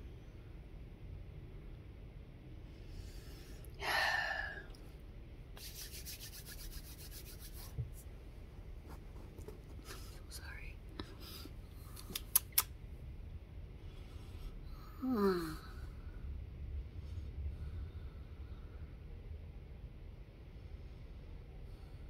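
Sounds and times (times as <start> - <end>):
breathy whisper-like sound: 2.8 - 5.0, 9.7 - 12.4
fast rubbing strokes: 5.6 - 8.1
rubbing and handling noises: 5.6 - 10.6
sharp clicks: 12.0 - 12.7.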